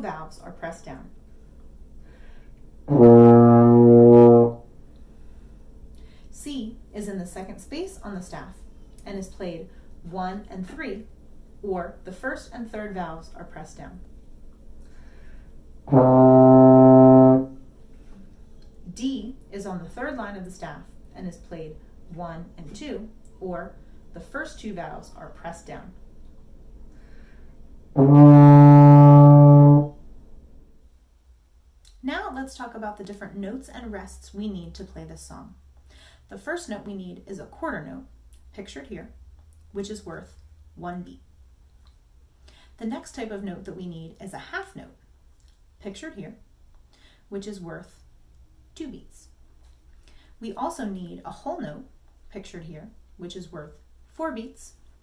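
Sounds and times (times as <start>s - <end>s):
baritone horn sustained note: 2.9s - 4.7s, 15.9s - 17.7s, 28.0s - 30.0s.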